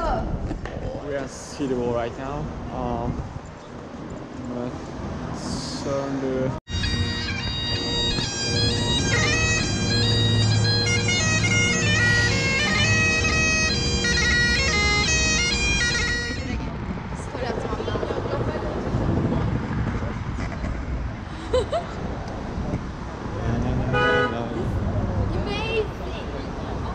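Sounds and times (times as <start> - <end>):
bagpipe playing quick tune: 6.7 - 16.6.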